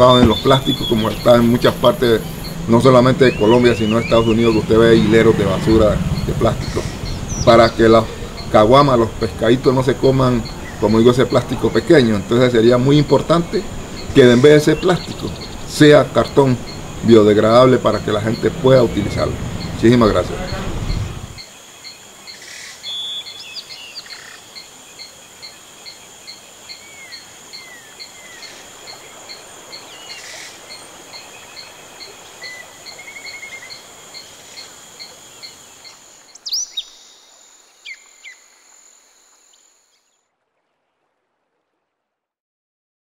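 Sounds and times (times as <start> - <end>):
birds chirping: 0.0 - 40.1.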